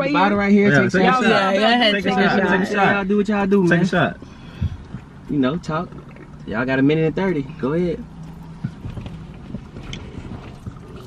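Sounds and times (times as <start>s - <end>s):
car cabin hum: 0.1s - 11.0s.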